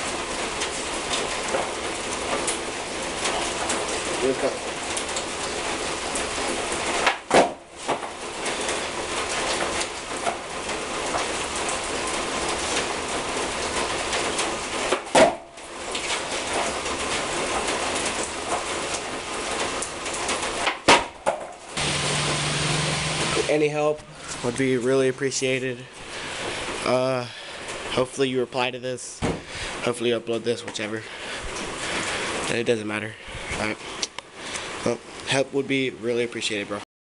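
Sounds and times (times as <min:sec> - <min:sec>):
steady rain: 0:00.0 - 0:36.8.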